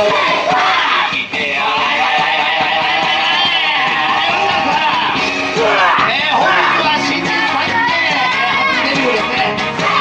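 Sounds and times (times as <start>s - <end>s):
loud dance music with guitar: 0.0s - 10.0s.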